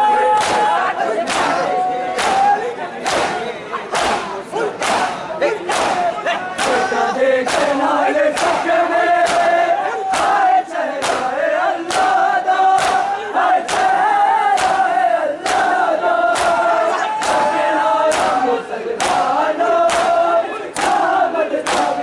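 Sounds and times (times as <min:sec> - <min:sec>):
men chanting in unison: 0:00.0 - 0:22.0
palms slapping chests: 0:00.3 - 0:22.0.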